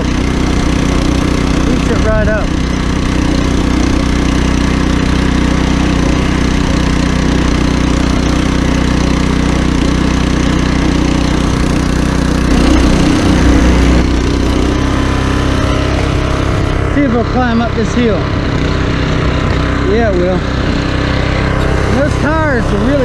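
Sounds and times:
tiller engine running under load: 0.0s - 23.0s
tines churning soil: 0.0s - 23.0s.

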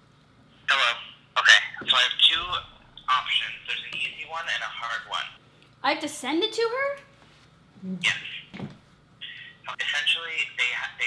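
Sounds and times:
person talking over speakerphone: 0.7s - 5.4s, 8.0s - 8.6s, 9.2s - 11.0s.

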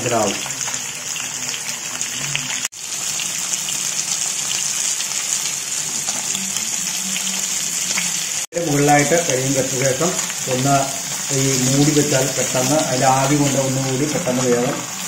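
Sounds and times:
fish sizzling in hot oil: 0.0s - 15.0s.

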